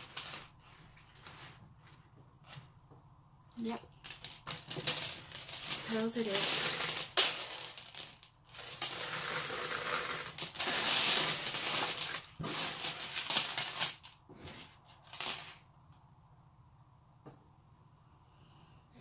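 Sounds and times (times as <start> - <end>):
beads rattling and clicking: 0.0 - 1.6, 3.5 - 14.2.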